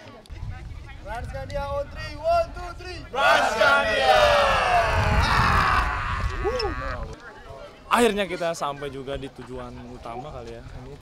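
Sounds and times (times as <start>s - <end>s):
young men cheering: 3.2s - 7.2s.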